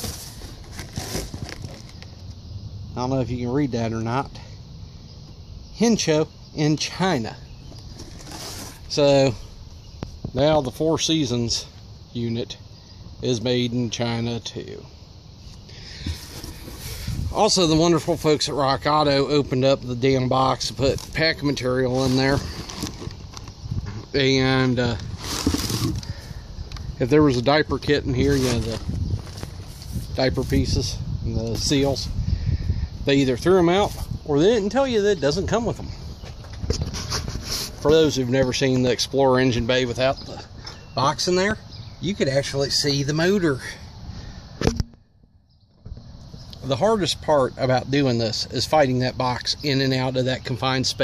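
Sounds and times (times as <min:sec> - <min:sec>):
cardboard box rustling: 0:00.0 - 0:02.0, 0:07.7 - 0:08.9, 0:16.0 - 0:17.1, 0:21.9 - 0:23.6, 0:25.0 - 0:26.0
light knocks and crinkles: 0:00.0 - 0:02.3
low outdoor background noise: 0:00.0 - 0:51.0.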